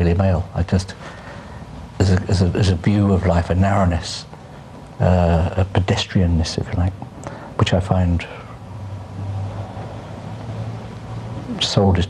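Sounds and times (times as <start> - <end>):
faint background hiss: 0.0 - 12.0
steady low hum: 0.0 - 12.0.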